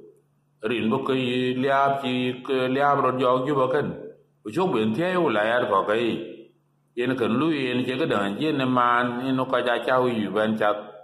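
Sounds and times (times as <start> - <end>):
man chanting: 0.6 - 6.4, 7.0 - 11.0.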